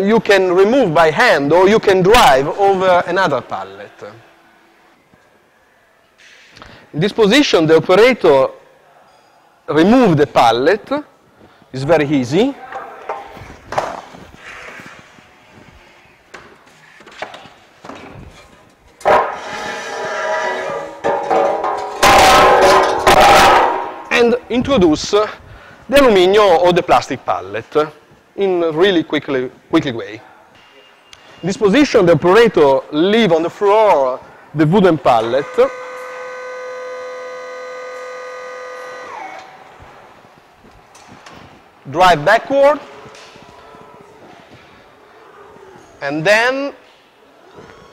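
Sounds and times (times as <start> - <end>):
metal pallet scraping: 18.0 - 24.1
hydraulic unit whining: 19.0 - 24.1, 35.2 - 40.0.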